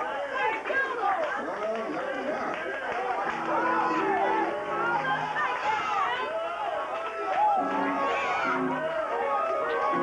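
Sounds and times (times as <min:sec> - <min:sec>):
voices calling out: 0:02.0 - 0:10.0
held musical notes: 0:07.5 - 0:10.0.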